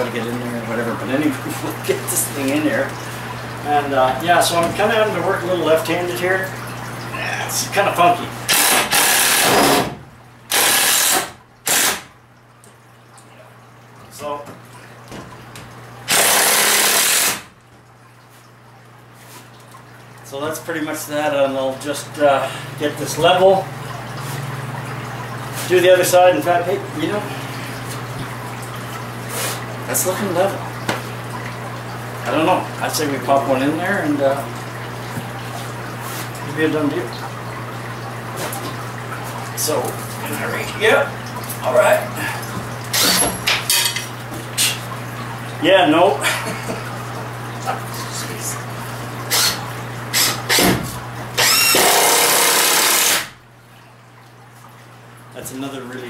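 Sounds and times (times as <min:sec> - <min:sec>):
water trickling: 0:00.0 - 0:56.0
cordless drill running against wood: 0:10.5 - 0:12.0, 0:51.4 - 0:53.3.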